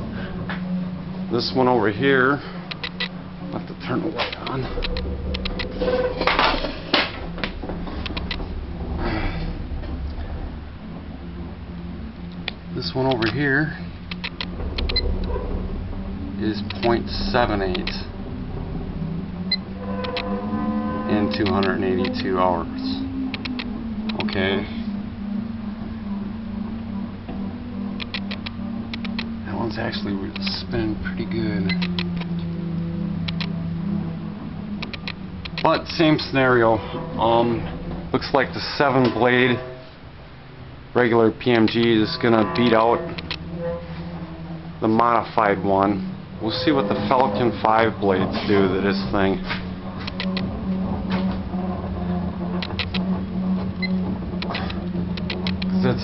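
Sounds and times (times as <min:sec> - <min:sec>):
electrical mains hum: 0:00.0 - 0:56.0
sharp clicks: 0:02.7 - 0:03.2, 0:04.3 - 0:05.7, 0:07.4 - 0:08.4, 0:14.0 - 0:15.4, 0:23.3 - 0:24.4, 0:28.0 - 0:29.3, 0:31.7 - 0:32.4, 0:33.2 - 0:33.6, 0:34.8 - 0:35.7, 0:42.6 - 0:43.4, 0:50.0 - 0:50.5, 0:52.6 - 0:53.1, 0:53.8 - 0:55.8
faint clicks: 0:28.0 - 0:29.3, 0:34.8 - 0:35.7, 0:42.6 - 0:43.4.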